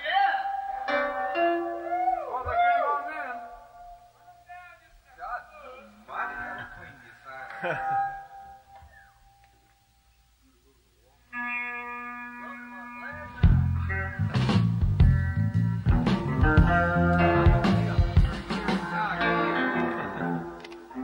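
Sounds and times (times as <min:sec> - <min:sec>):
people talking: 0:04.2 - 0:08.0, 0:12.4 - 0:14.7, 0:17.4 - 0:20.2
held electric guitar chord: 0:11.3 - 0:21.0
rock band playing: 0:11.4 - 0:21.0.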